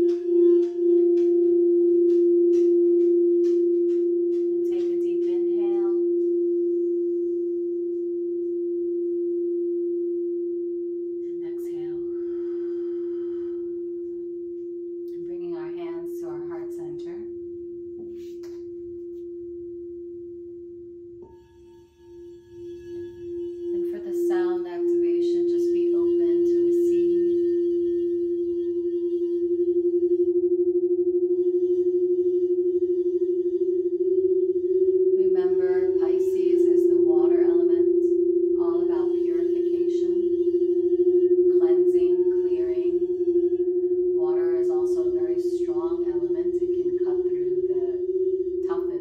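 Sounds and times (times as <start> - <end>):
singing bowl ringing: 0.0 - 49.0.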